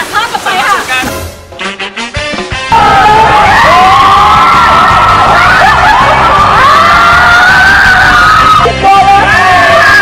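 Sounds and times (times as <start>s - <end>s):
loud background music: 1.0s - 10.0s
man yelling: 8.6s - 10.0s.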